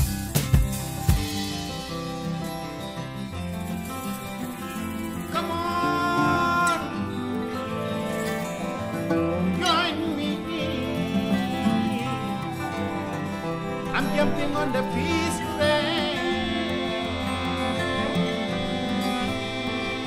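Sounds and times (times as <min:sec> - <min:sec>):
acoustic guitar bass and drums: 0:00.0 - 0:16.2
man singing: 0:05.3 - 0:20.0.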